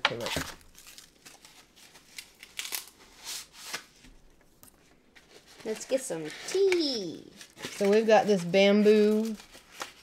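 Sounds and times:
dry leaf wrapping crinkling: 7.3 - 10.0.

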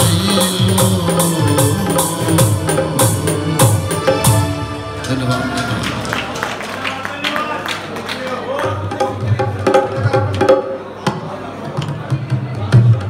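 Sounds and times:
tabla strikes: 0.0 - 5.3, 8.6 - 13.0
keyboard sustained notes: 0.0 - 6.6.

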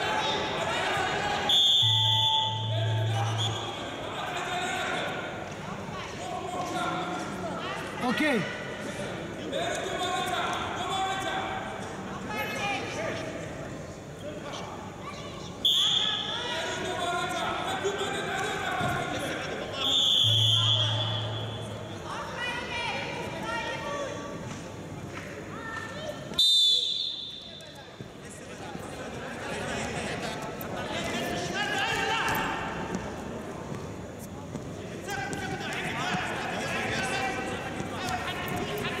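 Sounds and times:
murmur of voices: 0.0 - 39.0
shrill whistle blasts: 1.5 - 3.8, 15.6 - 16.4, 19.8 - 21.7, 26.4 - 27.8.

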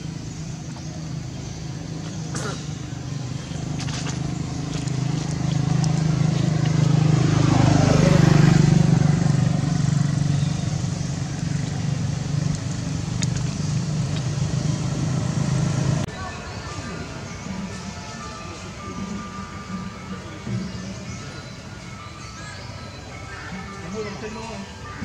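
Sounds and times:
vehicle engine running: 0.0 - 16.1.

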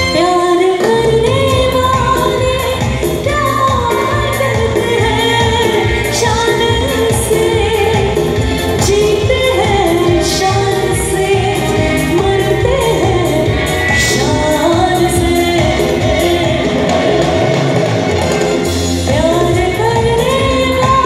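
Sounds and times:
woman singing: 0.0 - 17.7, 18.6 - 21.0
amplified band accompaniment: 0.0 - 21.0.

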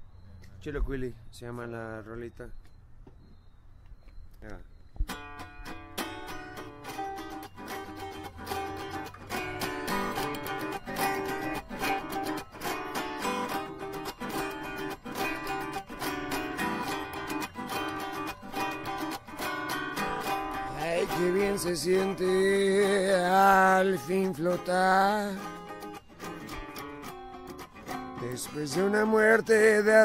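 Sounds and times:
acoustic guitar playing: 5.0 - 30.0.

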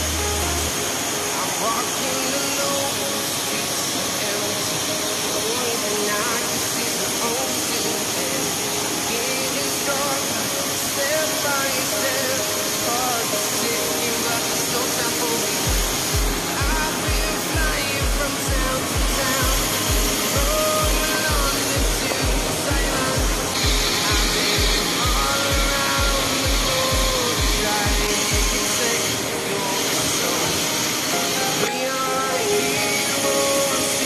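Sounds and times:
music with steady bass beat: 0.0 - 0.8, 15.7 - 29.4
waterfall rushing: 0.0 - 34.0.

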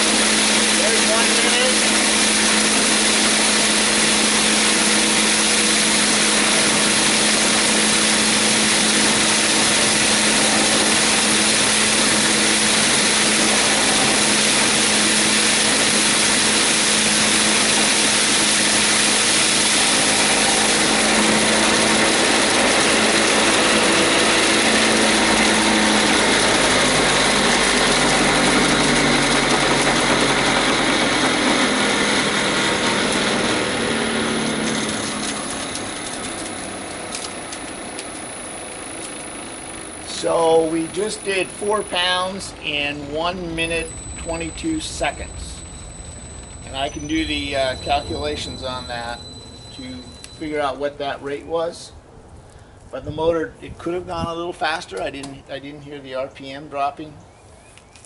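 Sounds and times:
rice huller motor humming: 0.0 - 50.8.

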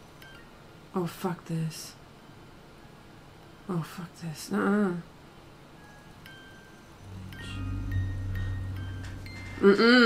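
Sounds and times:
high thin held notes: 7.0 - 9.8
low drone: 7.0 - 10.0.

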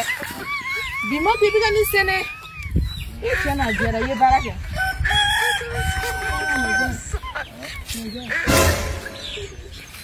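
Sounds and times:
rooster crowing: 4.8 - 7.0.

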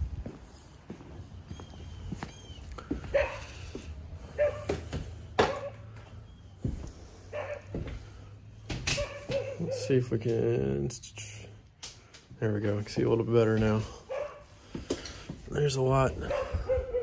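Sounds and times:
footsteps: 0.0 - 10.5, 11.9 - 17.0
dog yipping and whimpering: 1.5 - 4.7, 9.0 - 9.9.

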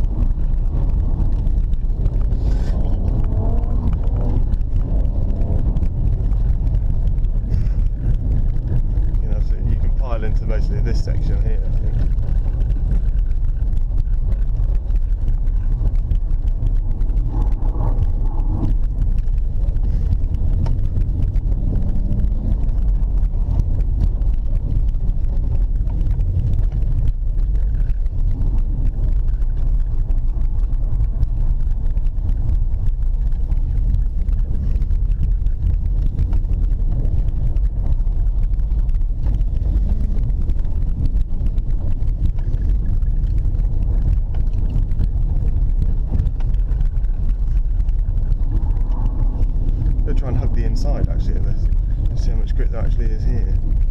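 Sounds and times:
car engine low rumble: 0.0 - 53.9.

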